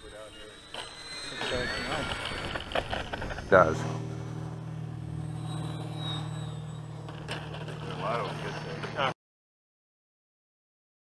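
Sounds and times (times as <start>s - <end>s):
model plane motor whine: 0.0s - 9.1s.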